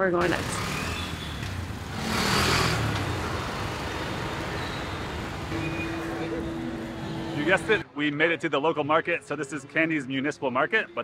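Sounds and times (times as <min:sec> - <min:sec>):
street traffic: 0:00.0 - 0:08.0
bus passing close by: 0:00.2 - 0:07.8.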